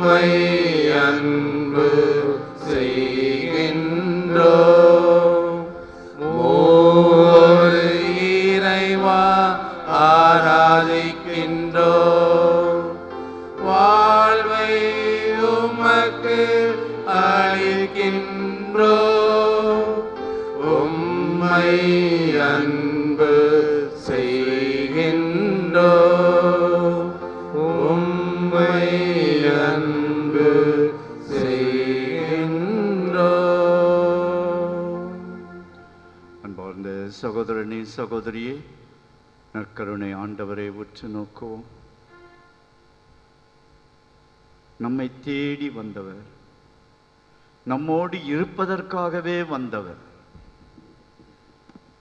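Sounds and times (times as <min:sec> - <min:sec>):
person singing slow hymn: 0:00.0 - 0:38.7
steady held accompaniment tone: 0:00.0 - 0:52.0.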